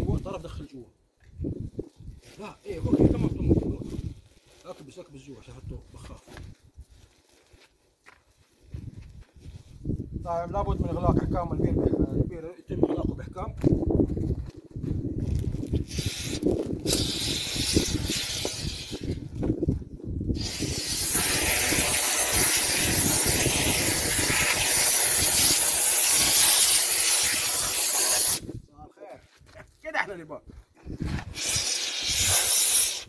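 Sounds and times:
pressurised gas hissing: 15.8s - 19.3s, 20.3s - 28.5s, 31.2s - 33.0s.

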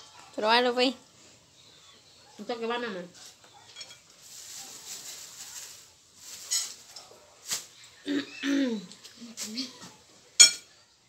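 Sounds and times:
metal spoon clinking dish: 10.4s - 10.7s.

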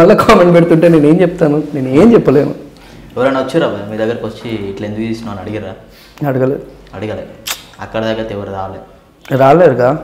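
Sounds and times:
man speaking: 0.0s - 10.0s
sharp click: 7.4s - 7.8s.

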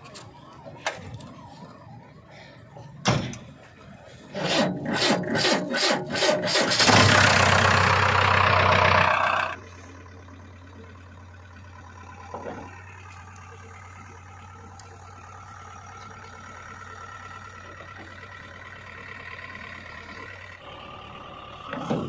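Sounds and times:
diesel engine running: 0.0s - 22.0s
starter motor cranking: 4.3s - 9.6s.

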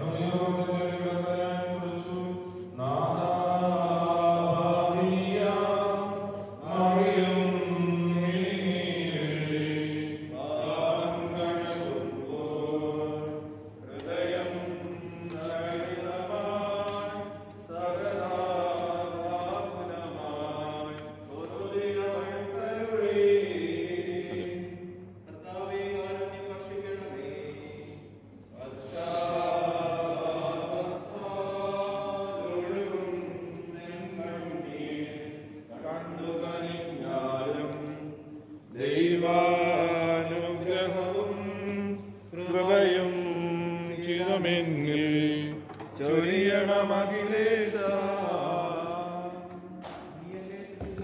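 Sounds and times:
person chanting: 0.0s - 51.0s.

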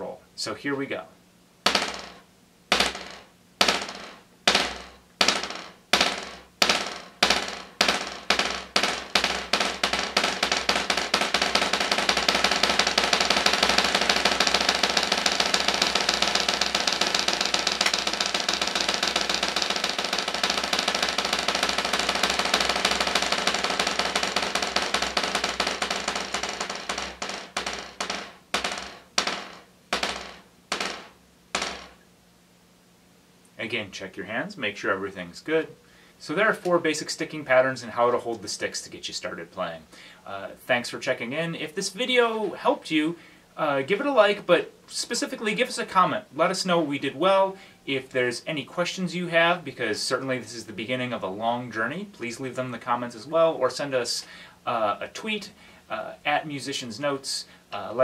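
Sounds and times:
drumsticks buzz roll on practice pad: 1.6s - 32.0s.

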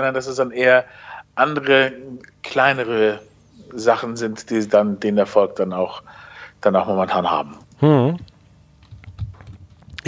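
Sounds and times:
person murmuring: 7.8s - 8.3s.

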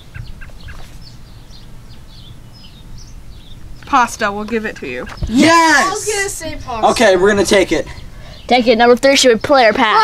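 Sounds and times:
low steady rumble: 0.0s - 9.5s
birds chirping faintly: 0.0s - 10.0s.

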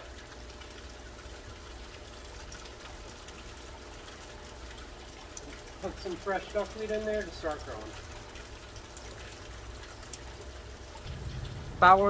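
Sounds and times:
water trickling and splashing: 0.0s - 12.0s.

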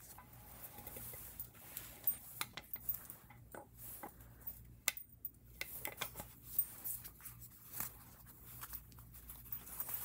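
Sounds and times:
soft fabric rustling: 0.0s - 4.8s, 5.7s - 10.0s
low steady hum: 0.0s - 10.0s.

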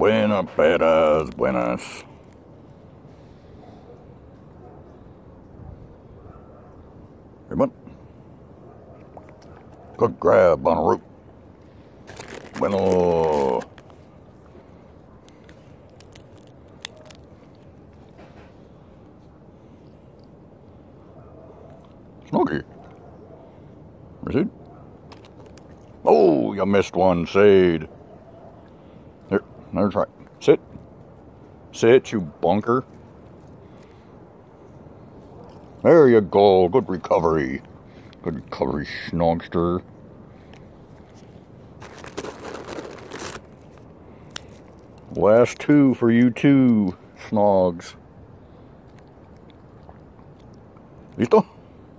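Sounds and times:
crackling peanut bag: 0.7s - 2.4s, 11.9s - 18.2s, 41.0s - 45.6s
peanut shell cracking: 12.0s - 14.0s, 15.2s - 17.8s.

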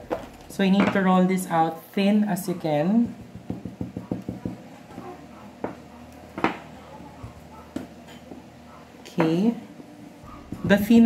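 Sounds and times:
taps on wooden table: 3.0s - 5.8s.

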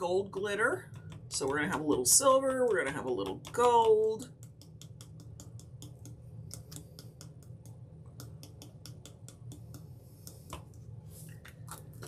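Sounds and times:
glitter jar tapping and shaking: 0.0s - 12.0s.

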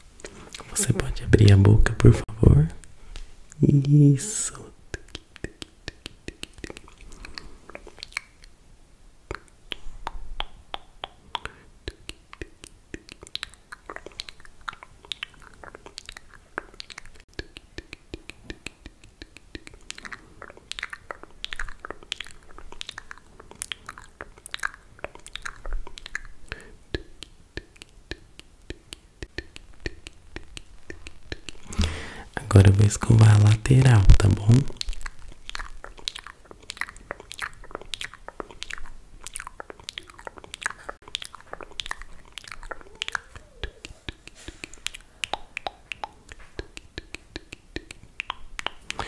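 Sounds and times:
wet mouth clicks: 0.2s - 8.6s, 9.2s - 49.0s.

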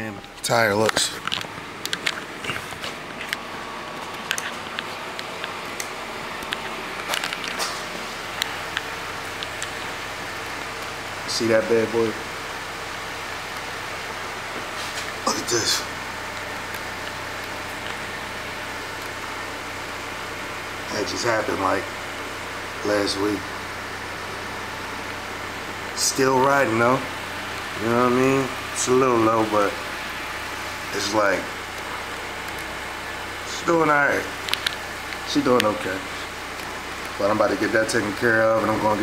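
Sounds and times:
car engine idling: 0.0s - 39.0s
steady background hum: 0.0s - 39.0s
footsteps on concrete: 0.3s - 8.2s.

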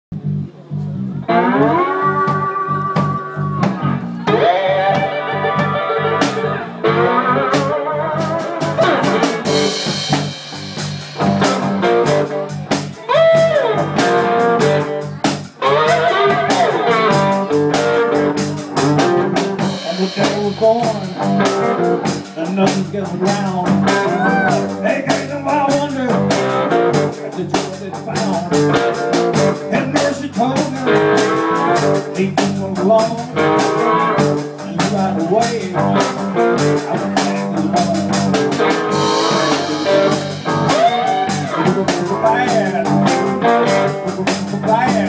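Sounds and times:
bass line: 0.1s - 45.0s
electric guitar bending notes: 0.2s - 45.0s
drum kit beat: 1.3s - 45.0s.

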